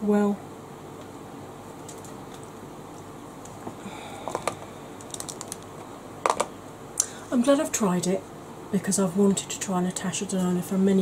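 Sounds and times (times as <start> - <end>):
plastic cases clicking and tapping: 4.3 - 5.6, 6.2 - 6.5.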